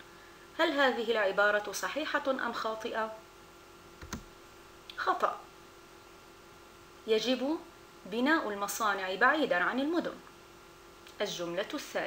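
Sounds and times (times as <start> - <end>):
faint steady hum: 0.0 - 12.0
computer mouse click: 4.0 - 4.3.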